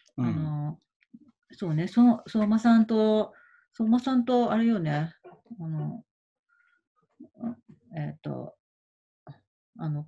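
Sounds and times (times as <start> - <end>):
person humming and murmuring: 0.2 - 0.5.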